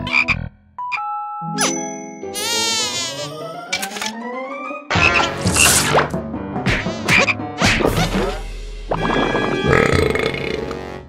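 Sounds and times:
long cartoon burp: 0:09.1 - 0:10.8.

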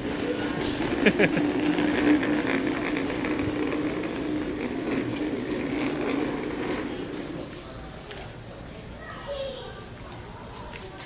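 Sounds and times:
plastic chair legs scraping tiles: 0:00.0 - 0:07.6.

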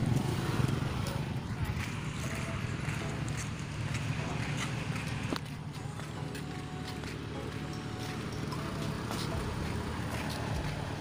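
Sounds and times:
footsteps on concrete: 0:00.1 - 0:11.0.

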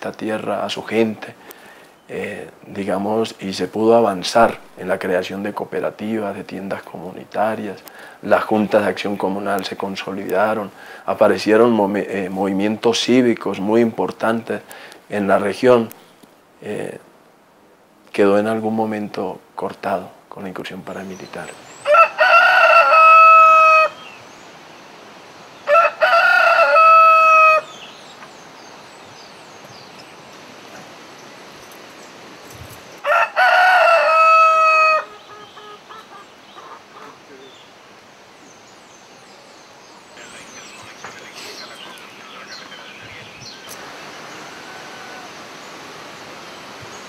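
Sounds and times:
steady hiss: 0:00.0 - 0:21.8, 0:23.8 - 0:33.1, 0:35.0 - 0:47.0
rooster crowing: 0:21.8 - 0:24.2, 0:25.6 - 0:27.8, 0:33.0 - 0:37.5, 0:43.6 - 0:45.7
faint bird chirps: 0:35.0 - 0:37.8, 0:38.4 - 0:45.9.

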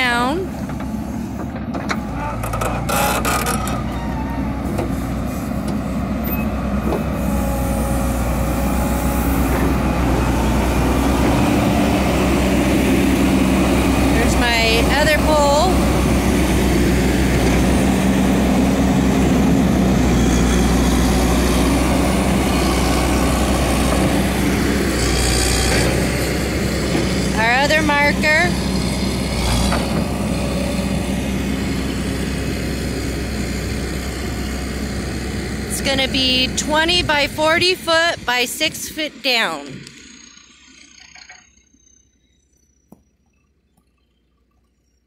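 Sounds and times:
backhoe engine running: 0:00.0 - 0:45.0.

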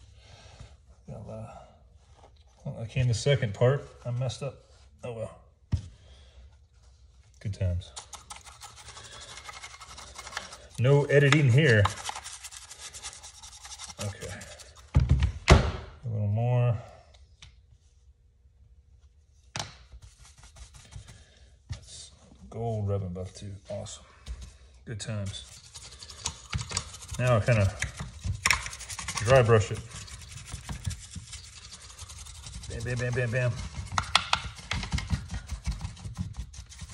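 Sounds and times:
brush bristles scrubbing surface: 0:08.0 - 0:14.8, 0:25.0 - 0:36.9.

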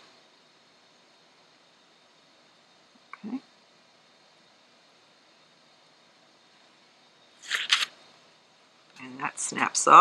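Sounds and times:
plastic scrapes: 0:07.4 - 0:07.9.

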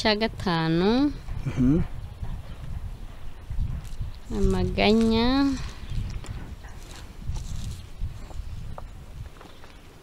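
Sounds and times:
microphone handling rumble: 0:00.4 - 0:09.8.

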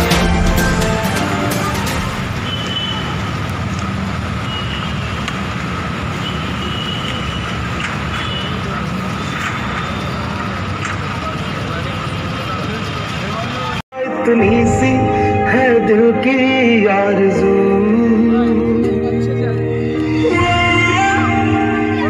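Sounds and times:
traffic rumble: 0:00.9 - 0:13.8
people talking: 0:10.0 - 0:13.8.

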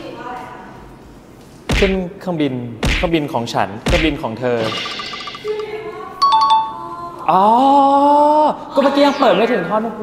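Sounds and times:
bright electronic chime notes: 0:04.6 - 0:06.7.

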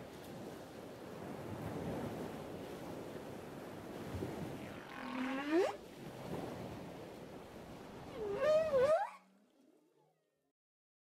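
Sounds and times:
gliding animal-like calls: 0:04.6 - 0:05.8, 0:08.0 - 0:09.5.

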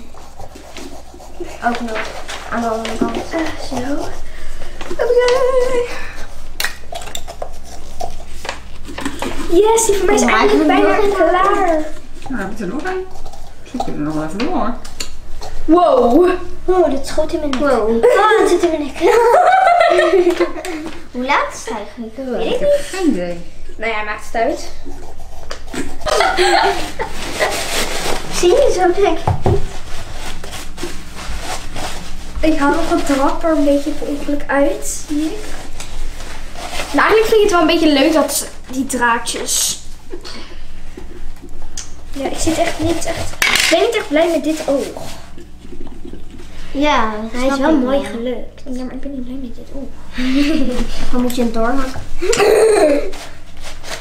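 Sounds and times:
pumpkin flesh being scraped: 0:00.0 - 0:05.2.

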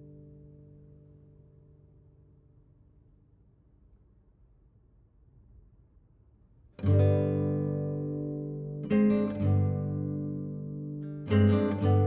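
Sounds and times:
guitar chords: 0:06.8 - 0:12.0.

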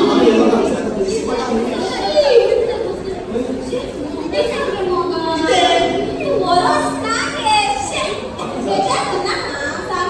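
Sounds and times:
actors speaking in echoing hall: 0:00.0 - 0:10.0.

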